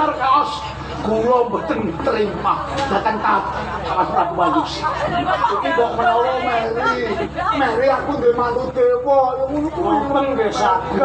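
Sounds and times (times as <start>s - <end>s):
actors speaking dialogue: 0.0s - 11.0s.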